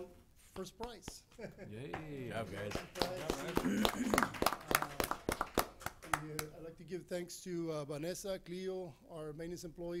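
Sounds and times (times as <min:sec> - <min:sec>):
group clapping: 0:01.9 - 0:06.6.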